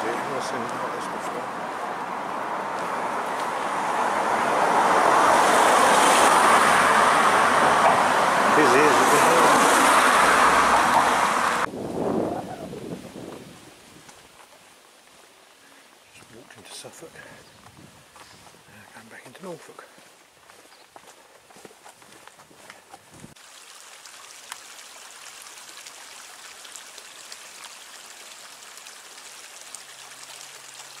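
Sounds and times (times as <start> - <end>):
steady outdoor hiss: 0.0 - 21.4, 23.3 - 31.0
person speaking indistinctly: 18.7 - 20.1.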